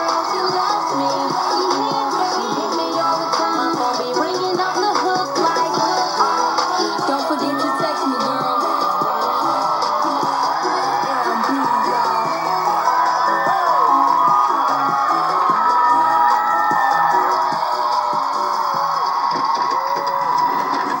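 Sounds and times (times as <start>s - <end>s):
crowd screaming and cheering: 0.0s - 21.0s
loud live concert music: 0.0s - 21.0s.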